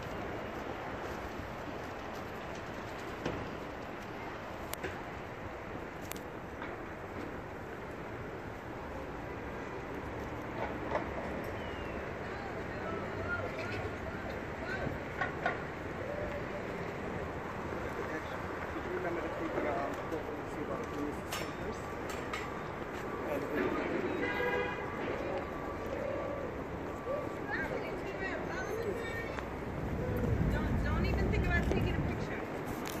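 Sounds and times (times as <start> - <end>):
low rumble of traffic: 0.0 - 33.0
wind: 0.0 - 33.0.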